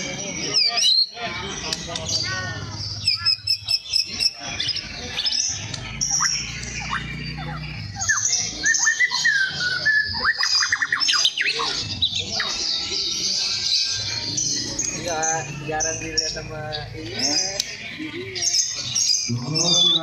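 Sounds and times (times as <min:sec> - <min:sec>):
bird singing whistled notes: 0:01.8 - 0:17.8, 0:18.4 - 0:20.0.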